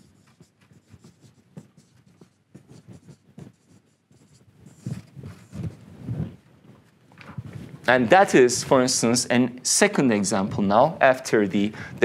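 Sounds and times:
marker pen scratching on whiteboard: 0.0s - 7.6s.

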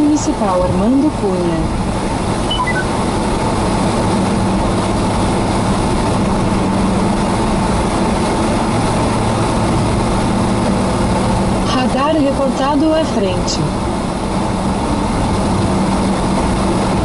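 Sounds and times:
car engine drone: 0.0s - 17.0s
tyre road noise: 0.0s - 17.0s.

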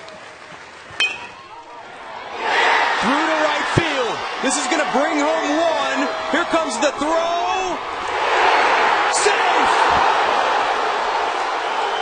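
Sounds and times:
metal bat hitting ball: 1.0s - 1.4s.

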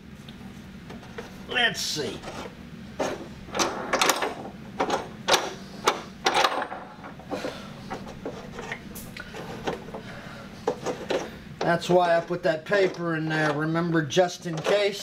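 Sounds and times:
steady low hum: 0.0s - 15.0s
metal clanks and knocks: 10.6s - 13.8s, 14.4s - 15.0s.

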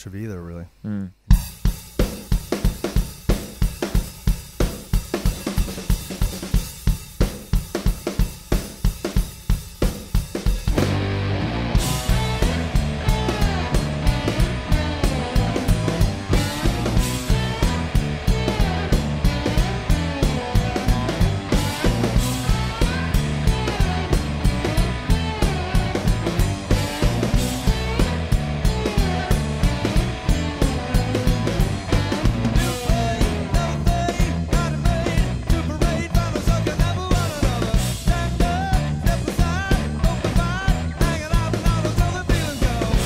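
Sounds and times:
drum kit steady beat: 0.0s - 43.0s
bass guitar: 10.2s - 43.0s
electric guitar heavy riff: 10.5s - 43.0s.

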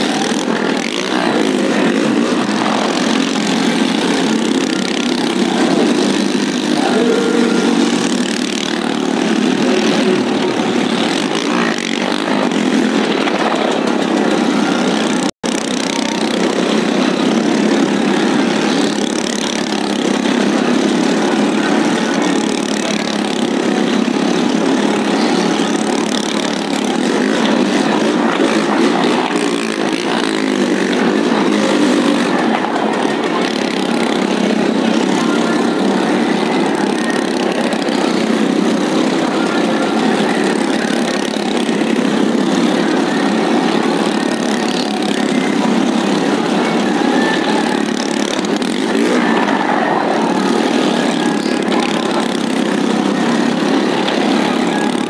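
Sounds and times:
motorcycle engines idling and revving: 0.0s - 55.0s.

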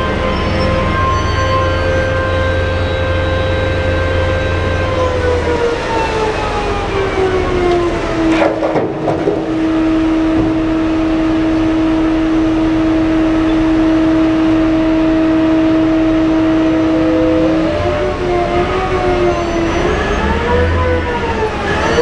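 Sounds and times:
haul truck engine whining: 0.0s - 22.0s.

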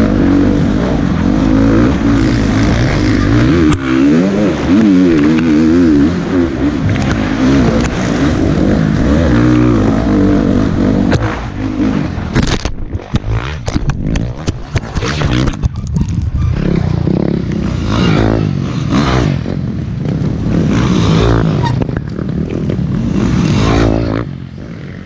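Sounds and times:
dirt bike engine revving: 0.0s - 25.0s.

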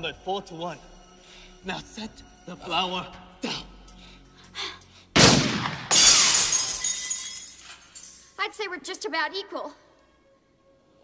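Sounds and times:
glass shards tinkling: 5.9s - 8.4s
glass shattering: 5.9s - 8.4s.

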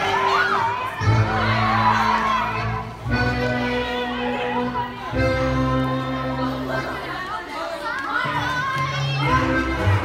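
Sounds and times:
dance music: 0.0s - 7.6s, 8.3s - 10.0s
children shouting and cheering: 0.0s - 10.0s.

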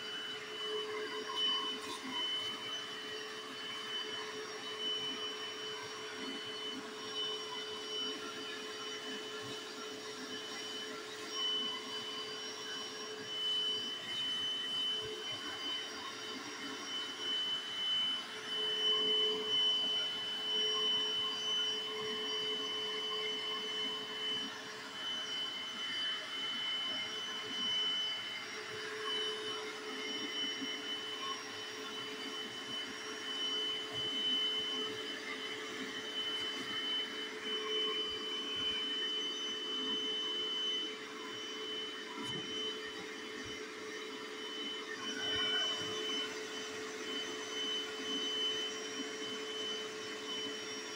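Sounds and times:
carpet cleaner motor whining: 0.0s - 50.9s.

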